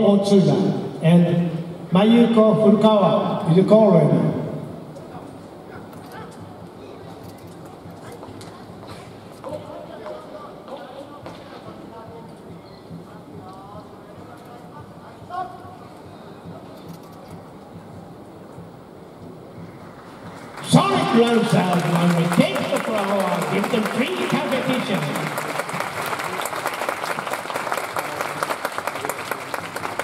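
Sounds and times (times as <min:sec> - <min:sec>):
faint audience chatter: 0:04.2 - 0:30.0.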